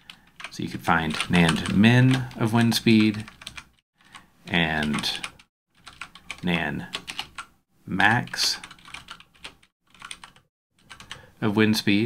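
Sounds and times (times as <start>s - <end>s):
computer keyboard typing: 0.0s - 7.5s, 8.6s - 11.2s.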